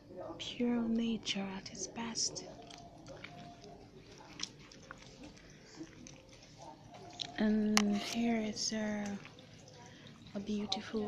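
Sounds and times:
faint chewing mouth clicks: 2.3s - 8.2s.

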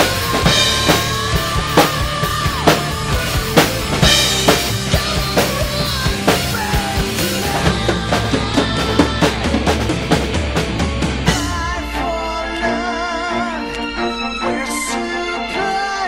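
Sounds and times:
rock drum kit playing: 0.0s - 14.3s
recorded metal song: 0.0s - 16.0s.

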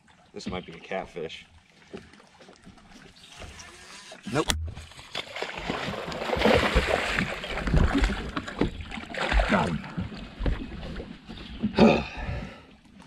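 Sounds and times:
fish splashing at water surface: 4.8s - 9.7s.

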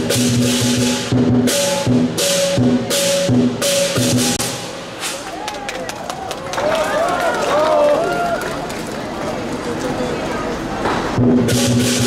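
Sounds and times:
crowd calling out and exclaiming: 5.0s - 11.0s.

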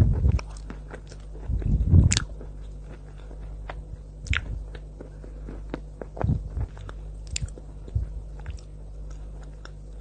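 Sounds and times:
crunchy chewing: 0.0s - 10.0s.

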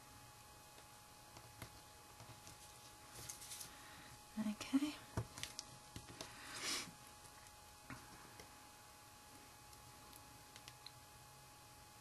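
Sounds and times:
paper rustling: 2.2s - 3.8s.

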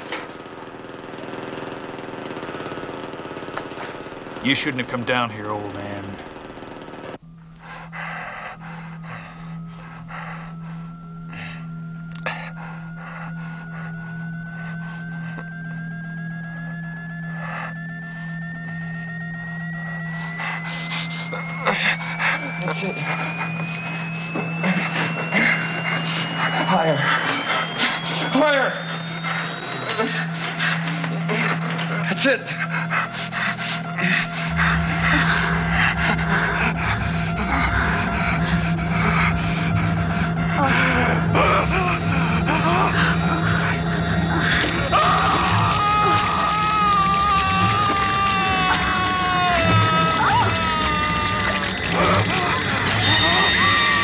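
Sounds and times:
eerie rising tone: 0.0s - 54.0s
steady low hum: 0.0s - 54.0s
panting gasping breaths: 7.6s - 15.6s, 20.1s - 40.0s.

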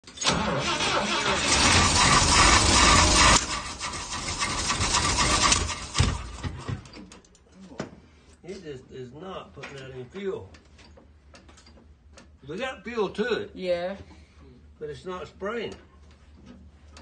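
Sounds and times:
van engine starting and running: 0.0s - 7.1s.

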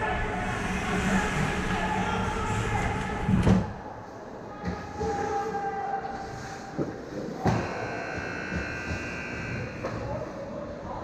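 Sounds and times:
steady whining hum: 0.0s - 4.1s.

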